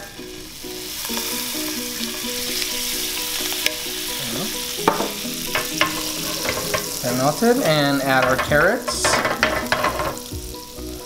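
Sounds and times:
butter sizzling in frying pan: 0.0s - 11.0s.

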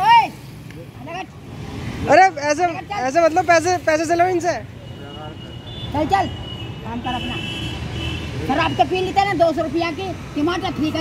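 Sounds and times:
street traffic rumble: 0.0s - 11.0s
voices: 0.0s - 11.0s.

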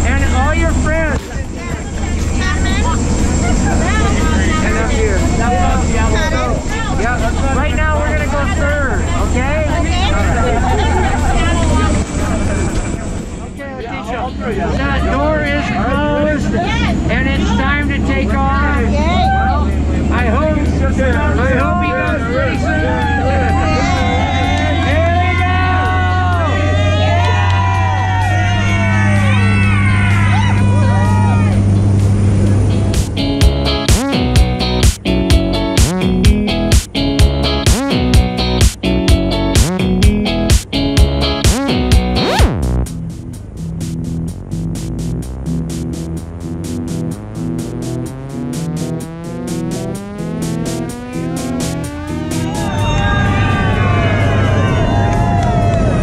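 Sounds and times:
propeller plane engine droning: 0.0s - 35.8s, 38.5s - 56.0s
people talking and calling out: 0.0s - 43.0s, 45.0s - 56.0s
people cheering and whooping: 9.6s - 12.4s, 18.5s - 19.8s, 21.3s - 31.7s, 51.8s - 56.0s
guitar music with strong beat: 31.7s - 53.0s.

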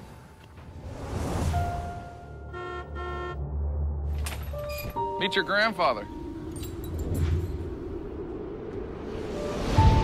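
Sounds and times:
car horn toots: 2.3s - 3.5s.

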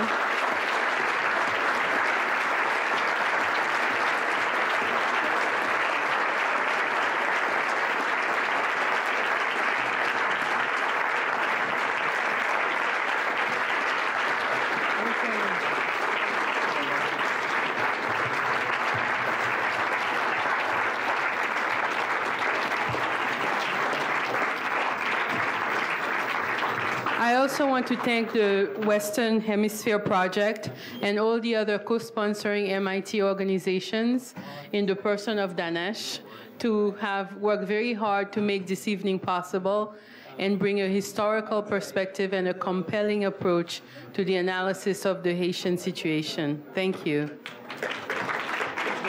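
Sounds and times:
large audience applauding: 0.0s - 29.1s, 47.2s - 49.0s.

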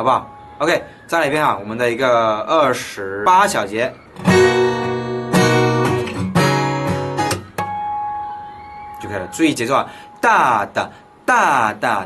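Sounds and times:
acoustic guitar strumming: 0.0s - 1.0s, 3.3s - 11.2s
ringing guitar harmonic: 0.0s - 1.0s, 3.9s - 10.2s.

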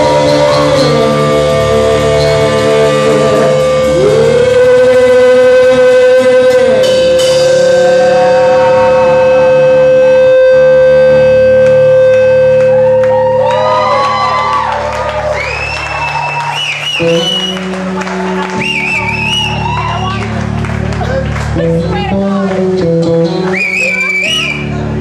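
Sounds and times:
live rock band music: 0.0s - 14.5s, 16.8s - 25.0s.

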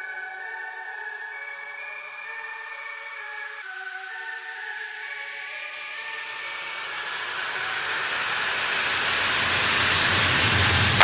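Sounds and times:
synth white-noise riser: 5.8s - 11.0s
low rumble: 7.1s - 11.0s.

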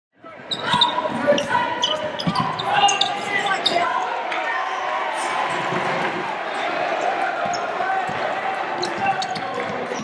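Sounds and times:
voices of players and spectators: 0.1s - 10.0s.

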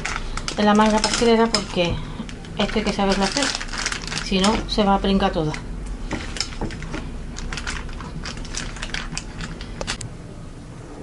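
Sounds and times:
plastic piping bag crinkling: 0.0s - 10.0s.

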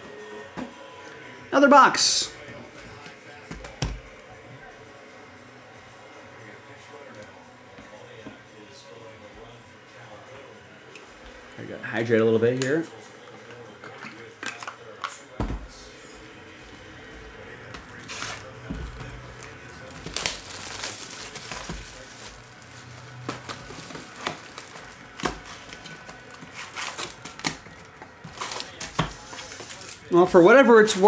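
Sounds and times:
foil packs rustling and clicking: 17.8s - 30.2s
plastic shrink-wrap crinkling: 17.9s - 30.1s.

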